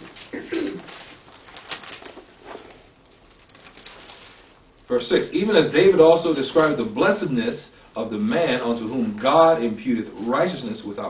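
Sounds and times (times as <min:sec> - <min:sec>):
man clearing throat: 0:00.3 - 0:00.9.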